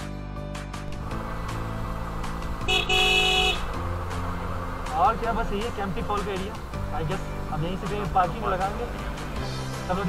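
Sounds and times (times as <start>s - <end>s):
background music with steady beat: 0.0s - 10.0s
motorcycle engine and road noise: 0.8s - 10.0s
vehicle horn honk: 2.6s - 3.8s.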